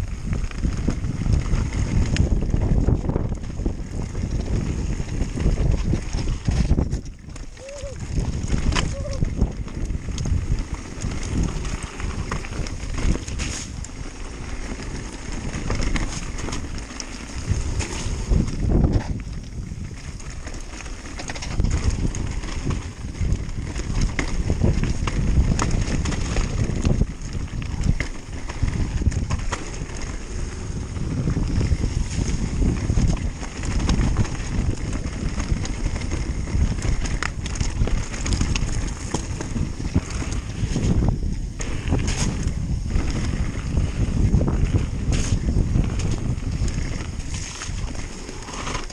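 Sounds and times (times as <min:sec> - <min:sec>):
bike rattling over rocks: 0:00.0 - 0:48.9
bike tyres rumbling over stones: 0:00.0 - 0:48.9
wind buffeting microphone: 0:00.0 - 0:48.9.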